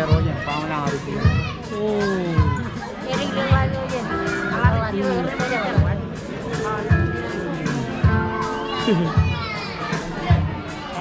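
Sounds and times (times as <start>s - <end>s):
chatter of voices: 0.0s - 11.0s
low thumping beat: 0.0s - 11.0s.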